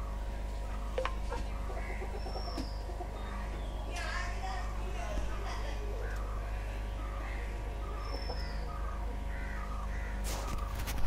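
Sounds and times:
faint bird calls: 0.0 - 11.0
steady low hum: 0.0 - 11.0.

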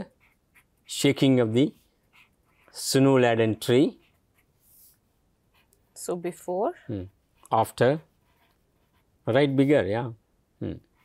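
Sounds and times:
pen scratching on paper: 0.0 - 5.8, 7.4 - 9.7.

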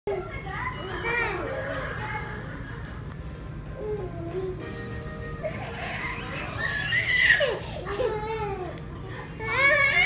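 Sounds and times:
toddlers playing and vocalizing: 0.1 - 10.0.

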